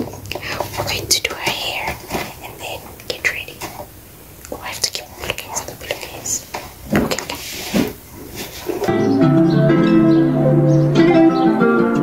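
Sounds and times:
woman whispering: 0.3s - 3.7s, 4.4s - 6.5s.

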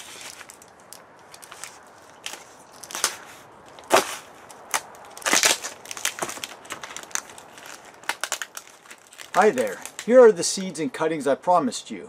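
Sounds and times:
tape tearing rasp: 2.3s - 10.1s.

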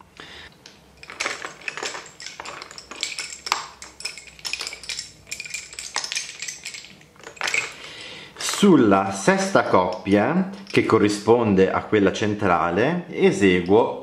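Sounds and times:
wooden bobbins clicking together: 0.6s - 8.0s.

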